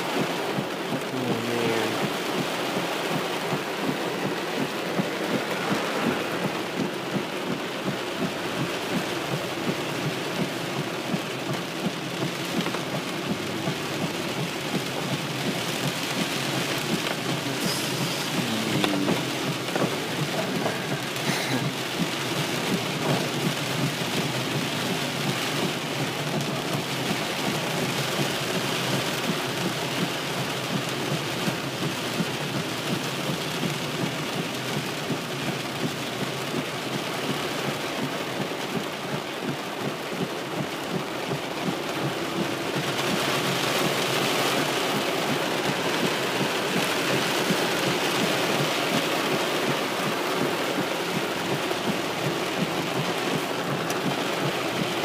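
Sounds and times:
heavy rain on car roof: 0:00.0 - 0:55.0.

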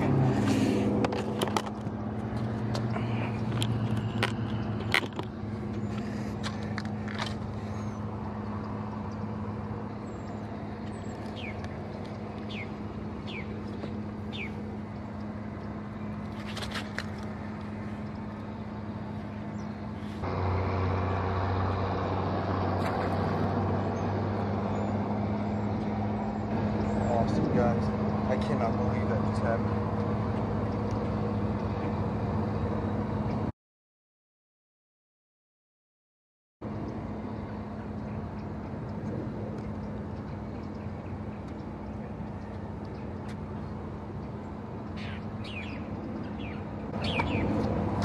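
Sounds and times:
low outdoor hum: 0:00.0 - 0:33.5, 0:36.6 - 0:48.0
knocks and clicks of gear: 0:01.0 - 0:07.5.

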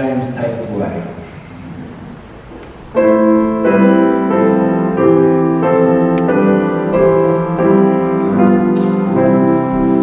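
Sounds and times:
steady background noise: 0:00.0 - 0:10.0
piano chord: 0:02.2 - 0:10.0.

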